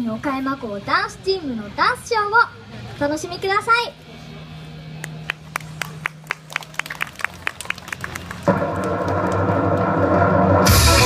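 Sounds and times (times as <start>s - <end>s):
audience clapping: 5.0s - 10.0s
recorded music over loudspeakers: 8.2s - 11.0s
band beat: 8.5s - 11.0s.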